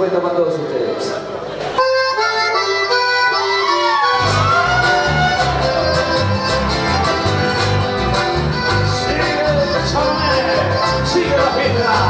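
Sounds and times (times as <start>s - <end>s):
accordions playing: 1.8s - 12.0s.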